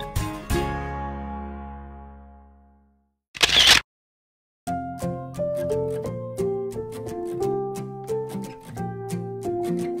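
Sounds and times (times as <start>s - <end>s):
background music: 0.0s - 2.9s, 4.7s - 10.0s
camera shutter click: 3.4s - 3.8s.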